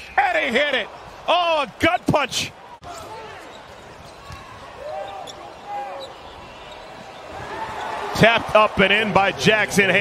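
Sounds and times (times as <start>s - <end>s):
players calling out: 0.0s - 10.0s.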